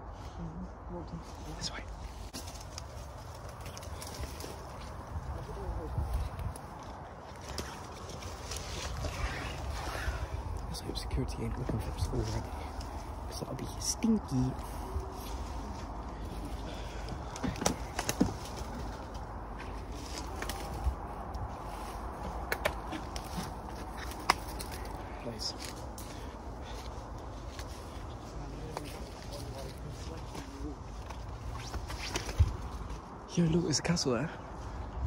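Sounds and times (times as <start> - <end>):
footsteps through dry leaves: 1.2 - 10.5, 11.9 - 33.1
twigs cracking underfoot: 2.0 - 10.8, 11.4 - 13.8, 14.4 - 33.2.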